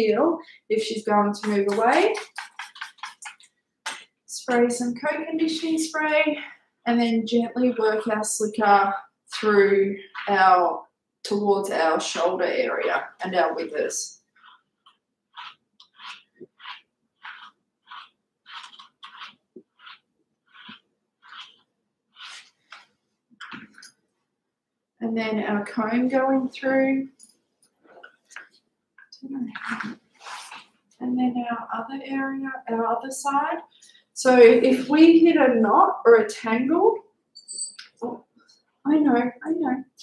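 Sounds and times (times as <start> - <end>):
brush scratching through dog fur: 1.4 - 3.4, 14.4 - 21.6, 22.2 - 22.8
spray bottle spritzing: 1.4 - 3.5.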